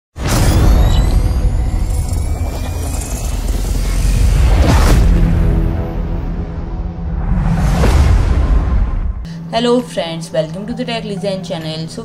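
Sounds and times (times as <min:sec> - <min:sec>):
deep rumble: 0:00.8 - 0:09.5
whooshes: 0:01.9 - 0:09.3.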